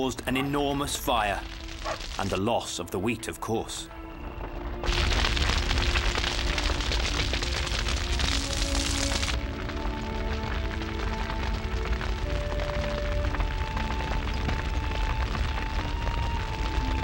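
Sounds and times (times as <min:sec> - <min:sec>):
background music with held notes: 0:00.0 - 0:17.0
fire crackling: 0:00.0 - 0:17.0
deep rumble: 0:03.8 - 0:17.0.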